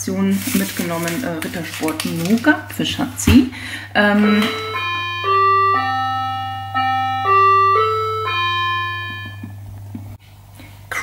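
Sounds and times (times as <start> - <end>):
electronic doorbell chime melody: 4.1 - 9.6.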